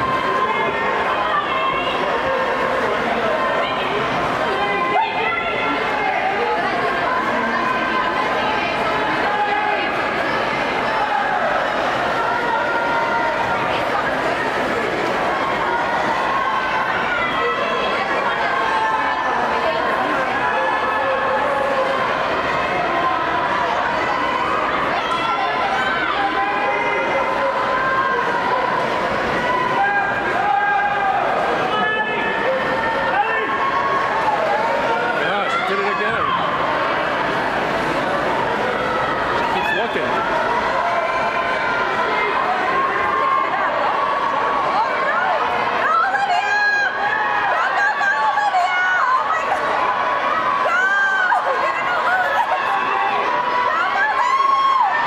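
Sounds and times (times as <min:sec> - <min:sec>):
crowd shouting and cheering: 0:00.0 - 0:55.0.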